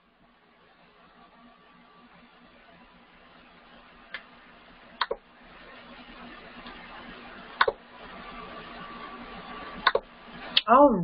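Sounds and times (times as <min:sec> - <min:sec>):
computer mouse clicks: 0:05.0 - 0:05.2, 0:07.6 - 0:07.8, 0:09.8 - 0:10.1.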